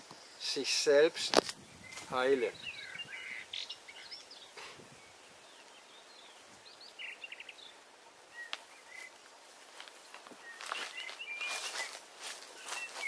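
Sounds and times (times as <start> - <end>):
outdoor background hiss: 0.0 - 13.0
small birds chirping: 0.0 - 13.0.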